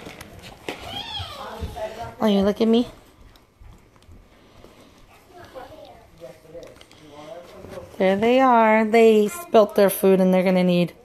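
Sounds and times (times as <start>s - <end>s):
puppies shuffling in wood shavings: 0.0s - 2.9s.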